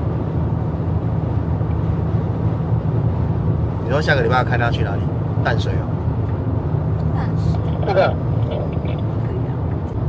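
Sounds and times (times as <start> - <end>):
engine and road noise: 0.0 - 10.0.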